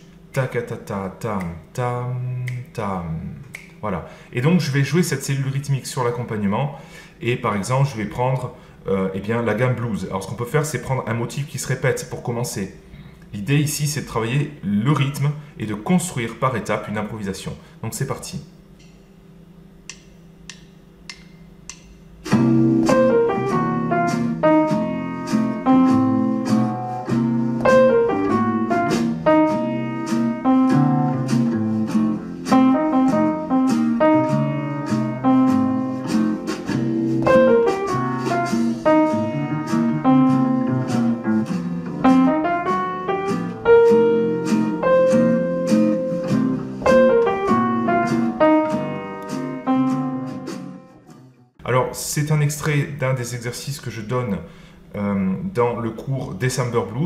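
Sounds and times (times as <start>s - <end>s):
blues jazz backing track: 22.2s - 51.2s
piano swing motif: 22.2s - 51.5s.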